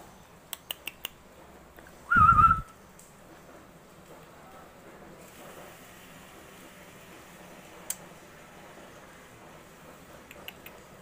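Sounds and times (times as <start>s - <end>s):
low blowing rumble: 2.1s - 2.7s
short whistled note: 2.1s - 2.7s.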